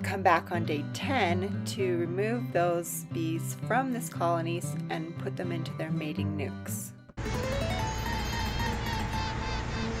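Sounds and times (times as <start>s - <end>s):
thin hum rising in pitch: 7.2s - 10.0s.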